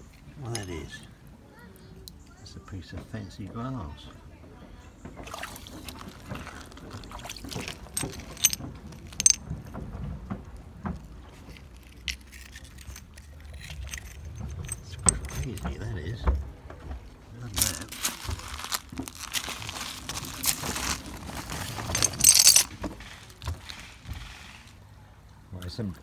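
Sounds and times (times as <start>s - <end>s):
stones and glass clinking: 5.9s - 9.7s, 11.5s - 15.8s, 17.6s - 22.9s.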